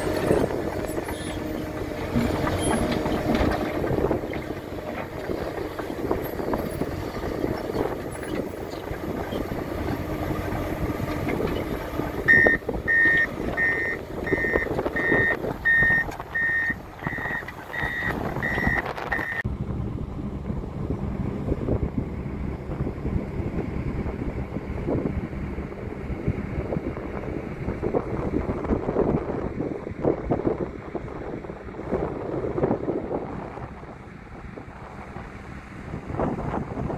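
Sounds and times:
diesel engine noise: 0.0s - 36.9s
reversing alarm beeping: 12.3s - 19.4s
low rumble: 16.3s - 29.8s.

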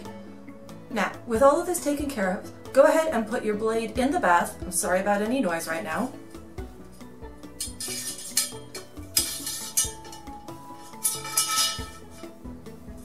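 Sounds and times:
background music: 0.0s - 13.0s
metal blade scraping inside a pipe: 7.6s - 12.4s.

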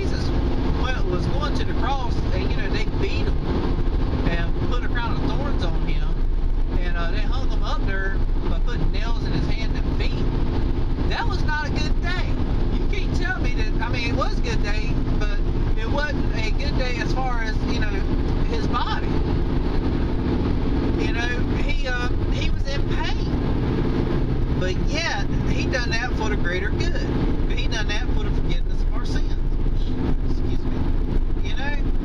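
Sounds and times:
man talking: 0.0s - 3.4s, 4.2s - 10.3s, 11.0s - 19.2s, 20.9s - 23.4s, 24.6s - 31.9s
car engine and road noise: 0.0s - 32.0s.

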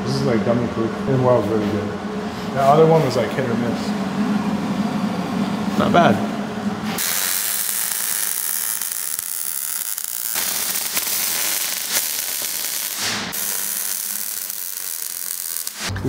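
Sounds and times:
welder crackling hiss: 7.0s - 15.9s.

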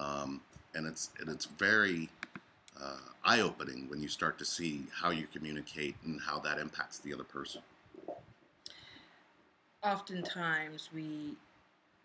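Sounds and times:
people talking: 0.0s - 2.1s, 2.8s - 8.8s, 9.8s - 11.4s.

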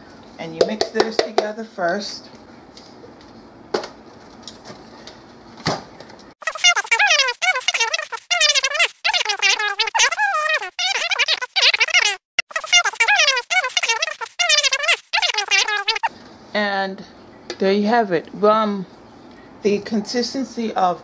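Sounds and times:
high-pitched warbling voice-like sound: 6.4s - 16.1s.

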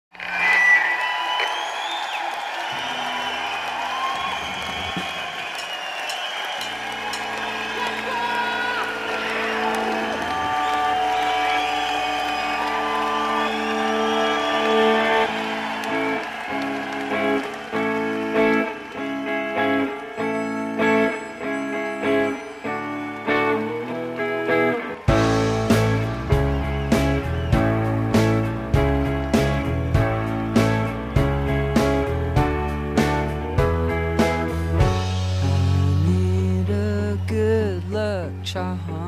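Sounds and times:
crowd shouting and whooping: 0.1s - 32.3s
electric guitar chords: 6.7s - 39.0s.

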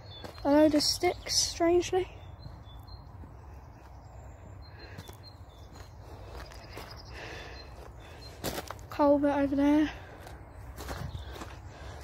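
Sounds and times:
faint bird chirps: 0.0s - 8.6s.

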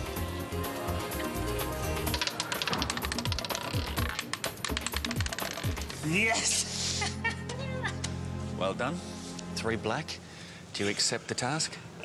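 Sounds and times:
roulette ball rattling: 1.9s - 6.1s.

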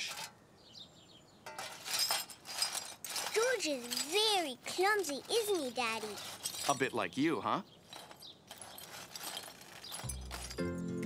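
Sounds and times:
pottery shards swept into dustpan: 1.5s - 4.4s, 8.0s - 10.6s.

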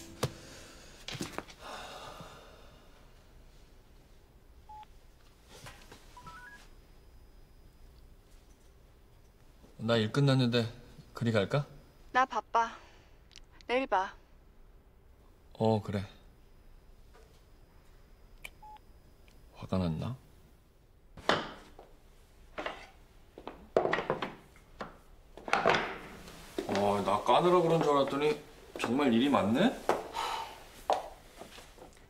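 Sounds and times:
smartphone beeps: 4.7s - 4.9s, 6.2s - 6.7s, 18.6s - 18.8s.

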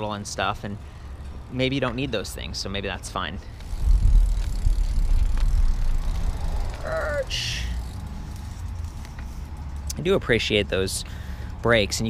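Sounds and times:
faint bike clicks: 3.4s - 11.7s
wind rumble on microphone: 3.6s - 7.9s.

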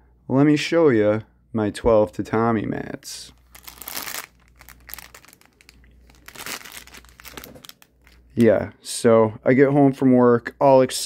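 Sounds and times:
plastic bag crinkling: 3.3s - 8.5s.

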